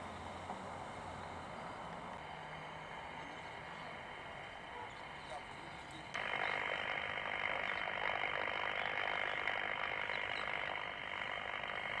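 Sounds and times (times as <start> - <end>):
outdoor street ambience hiss: 0.0 - 12.0.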